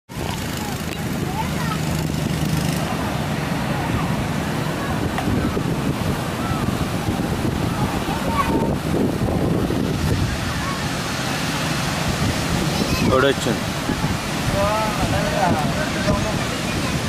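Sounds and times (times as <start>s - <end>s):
heavy surf breaking: 0.1s - 17.0s
wind buffeting microphone: 0.1s - 17.0s
faint voices calling out: 2.6s - 9.2s, 12.2s - 17.0s.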